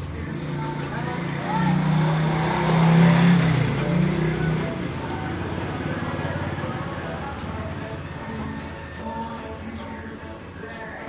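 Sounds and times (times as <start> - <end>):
vehicle engine passing: 0.0 - 8.9
background voices: 0.0 - 11.0
music: 0.0 - 11.0.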